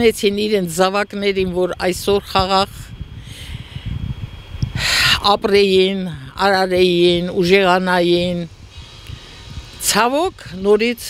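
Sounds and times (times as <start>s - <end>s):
woman speaking: 0.0s - 2.9s, 4.8s - 8.5s, 9.8s - 11.0s
microphone low rumble: 0.0s - 11.0s
sharp intake of breath: 3.0s - 5.2s, 8.5s - 9.8s.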